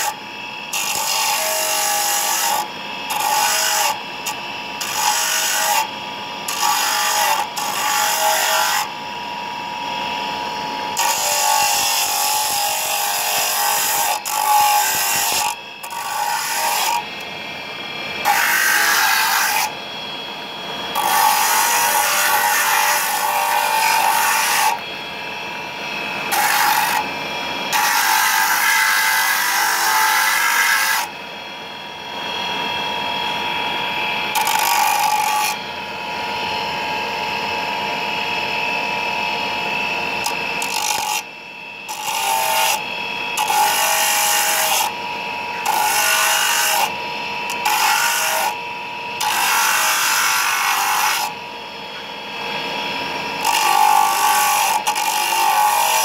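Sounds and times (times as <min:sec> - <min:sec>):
electric motor whining: 0:00.0 - 0:31.2.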